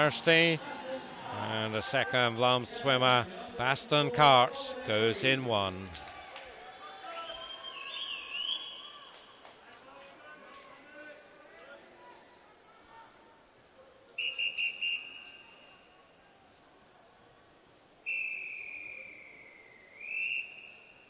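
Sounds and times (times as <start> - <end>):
referee's whistle blasts: 14.2 - 15.9, 18.1 - 21.0.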